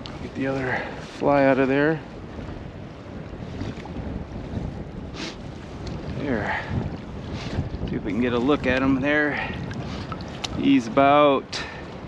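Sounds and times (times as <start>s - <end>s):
shallow stream rushing: 0.0s - 12.0s
wind buffeting microphone: 0.0s - 12.0s.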